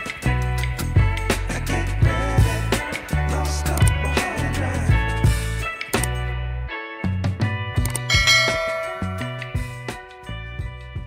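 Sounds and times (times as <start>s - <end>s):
bass line: 0.3s - 5.6s, 6.2s - 11.0s
drum beats: 7.4s - 11.0s
bell-like chord: 8.1s - 10.3s.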